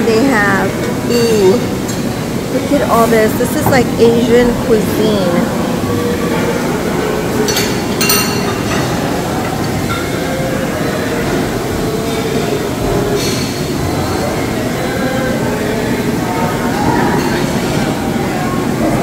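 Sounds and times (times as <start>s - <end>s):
murmuring voices: 0.0s - 19.0s.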